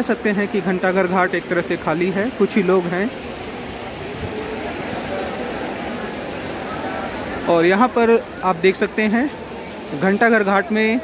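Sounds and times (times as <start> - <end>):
faint distant voices: 0.0 - 11.0
river current rushing: 0.0 - 11.0.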